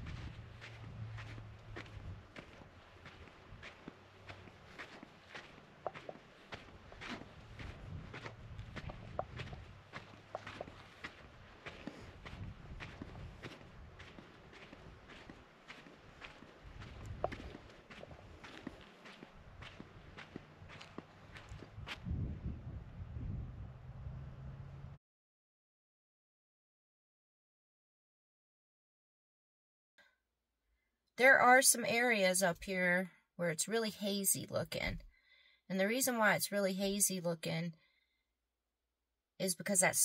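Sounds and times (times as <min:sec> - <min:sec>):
low rumble: 0:00.0 - 0:03.7, 0:07.0 - 0:10.6, 0:21.5 - 0:25.0
footsteps crunching on gravel: 0:00.0 - 0:22.0.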